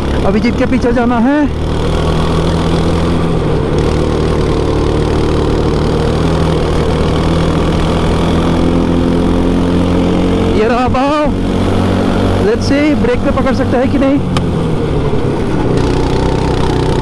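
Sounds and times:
small petrol engine running hard: 0.0 - 17.0.

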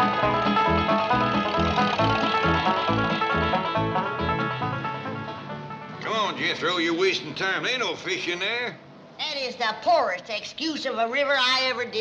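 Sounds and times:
banjo-led bluegrass music: 0.0 - 5.2.

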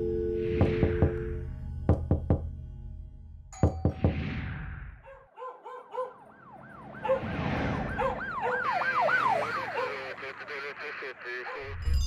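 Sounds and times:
knocking on a door: 0.6 - 1.2, 1.9 - 2.5, 3.6 - 4.2.

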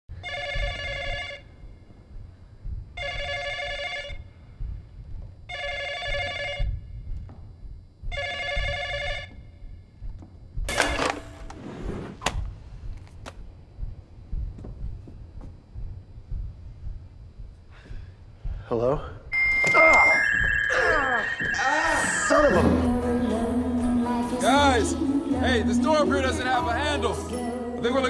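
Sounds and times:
telephone bell ringing: 0.2 - 1.4, 3.0 - 4.1, 8.2 - 9.3, 19.4 - 22.6.

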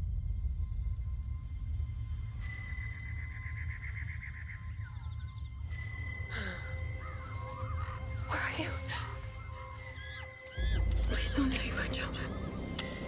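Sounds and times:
low rumbling drone: 0.0 - 13.0
high ringing tones: 2.1 - 3.9, 5.5 - 13.0.

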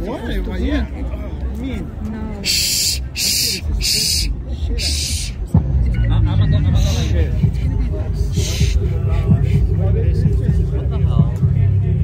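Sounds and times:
crowd voices: 0.0 - 12.0
music with deep bass: 1.9 - 12.0
hissing bursts: 2.4 - 5.4.

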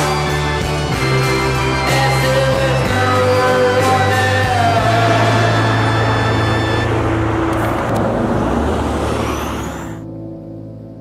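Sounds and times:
music track: 0.0 - 8.2
vehicle passing close: 3.9 - 10.1.

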